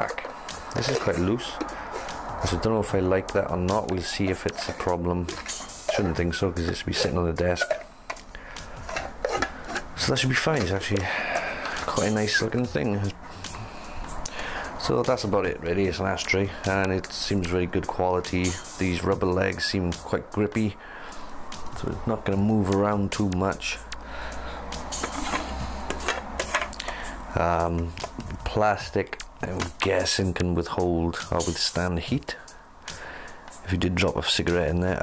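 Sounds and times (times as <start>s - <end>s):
plastic lid scraping shut: 4.5s - 7.8s, 8.8s - 11.1s, 25.0s - 26.7s.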